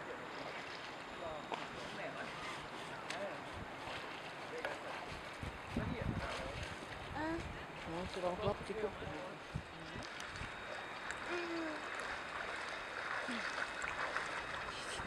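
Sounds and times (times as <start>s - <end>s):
steady outdoor hiss: 0.0s - 15.0s
swimmers splashing in water: 10.1s - 15.0s.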